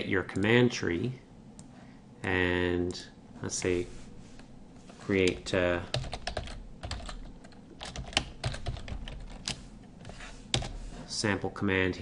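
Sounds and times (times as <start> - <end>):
computer keyboard typing: 5.2 - 9.6, 10.5 - 10.8.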